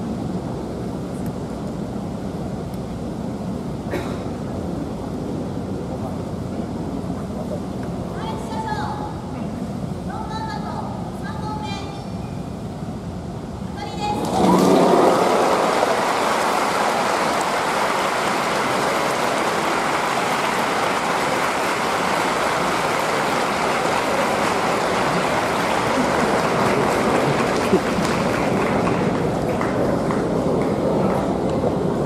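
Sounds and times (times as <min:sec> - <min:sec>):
audience applause: 0:14.2 - 0:32.0.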